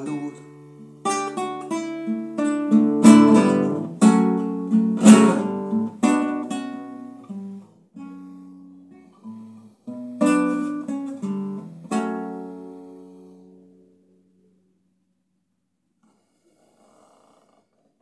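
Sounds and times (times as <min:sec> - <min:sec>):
classical guitar playing: 0:00.0 - 0:14.6.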